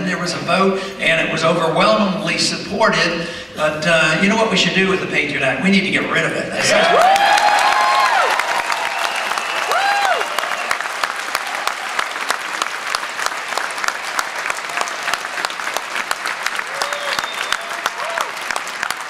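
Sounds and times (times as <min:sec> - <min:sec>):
audience applauding: 0:06.6 - 0:19.0.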